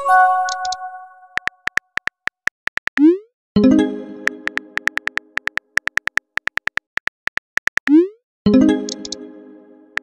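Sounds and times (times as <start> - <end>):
phone message chime: 0.0 - 1.2
keyboard tapping: 0.5 - 3.1, 4.2 - 7.9.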